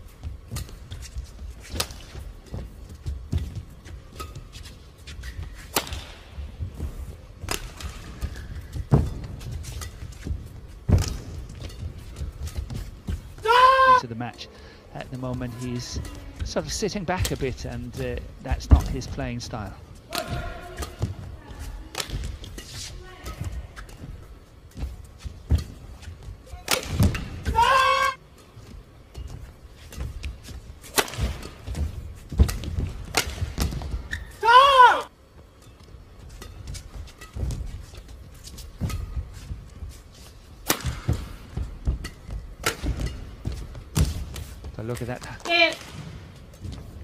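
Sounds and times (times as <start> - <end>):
rackets hitting shuttlecock: 1.6 - 13.6, 15.2 - 39.8, 40.6 - 46.3
shoe squeaks on court: 34.0 - 34.4.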